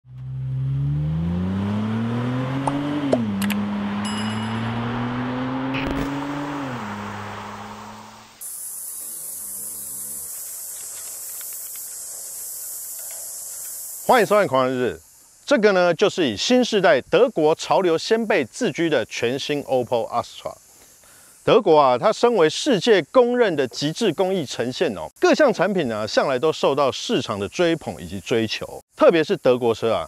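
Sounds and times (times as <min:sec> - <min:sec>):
car engine accelerating hard: 0:00.1 - 0:08.4
steady high hiss: 0:07.8 - 0:30.0.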